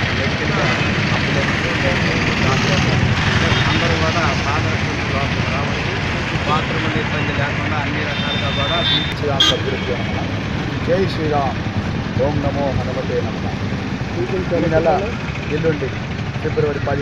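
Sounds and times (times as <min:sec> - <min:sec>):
man speaking into microphones: 0:00.0 - 0:13.4, 0:14.1 - 0:17.0
street traffic din: 0:00.0 - 0:17.0.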